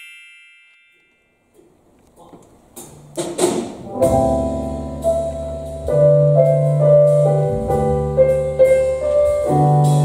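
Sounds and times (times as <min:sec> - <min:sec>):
bright ringing chime: 0:00.0 - 0:01.5.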